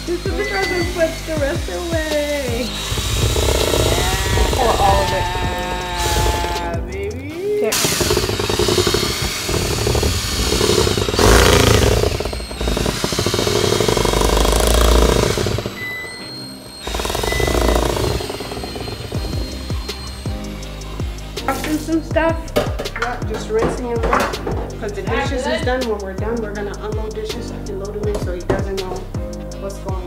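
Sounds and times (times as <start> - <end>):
drill motor whirring: 0.0 - 22.7
whisk churning batter: 7.7 - 15.8.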